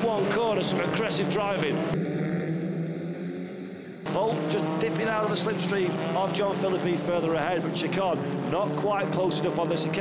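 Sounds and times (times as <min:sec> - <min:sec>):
racing car engines running: 0:00.0 - 0:10.0.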